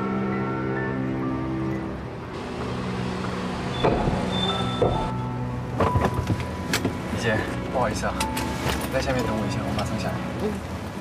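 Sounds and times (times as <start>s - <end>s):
car driving off slowly: 0.0s - 7.7s.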